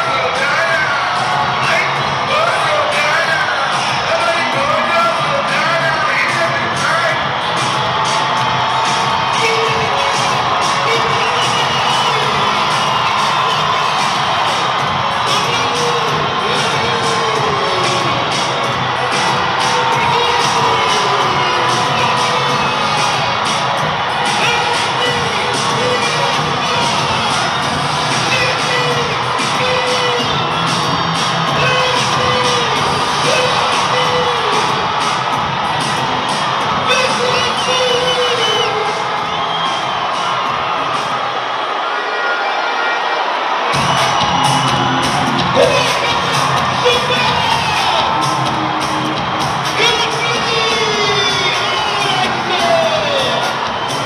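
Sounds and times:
crowd cheering and shouting: 0.0 - 54.0.

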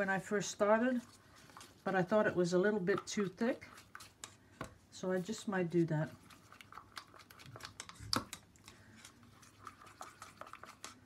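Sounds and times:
wooden stick stirring paint in cups: 0.0 - 11.0.

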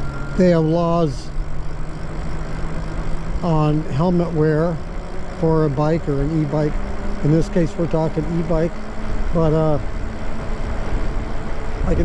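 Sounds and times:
low road rumble: 0.0 - 12.0
wind rushing over microphone: 8.8 - 12.0.

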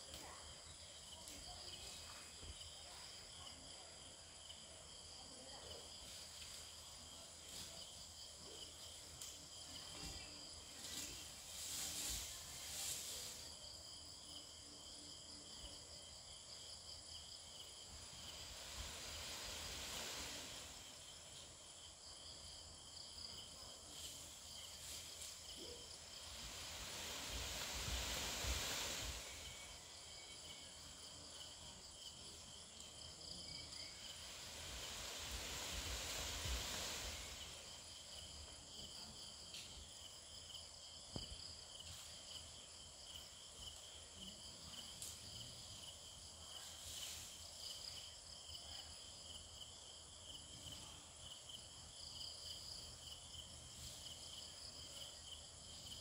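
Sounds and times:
crickets and night insects: 0.0 - 56.0
leaves and branches rustling: 5.9 - 13.8, 17.8 - 21.7, 23.3 - 33.0, 33.6 - 40.0.

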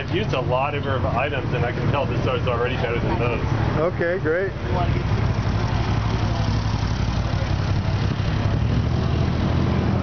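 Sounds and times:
engine humming: 0.0 - 10.0.

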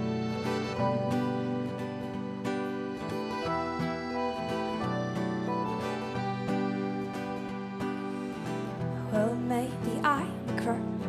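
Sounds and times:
acoustic guitars picked and strummed: 0.0 - 11.0.

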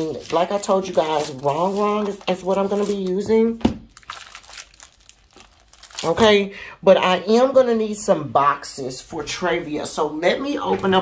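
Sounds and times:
plastic sleeve crinkling: 0.0 - 6.4.

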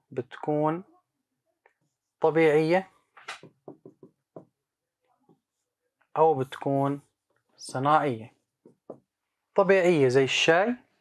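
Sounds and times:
pen tapping on touchscreen: 3.2 - 4.6.

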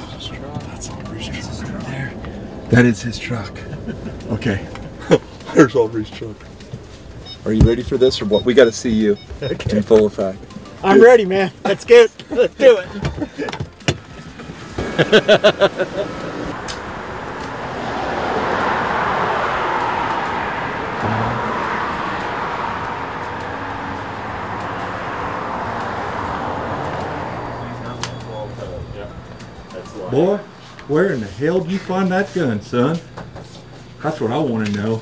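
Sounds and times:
people laughing: 3.3 - 5.6, 11.5 - 13.8, 14.7 - 16.5.

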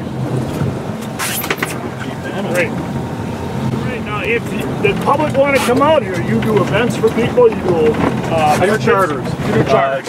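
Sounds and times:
boat engine humming: 0.0 - 10.0.

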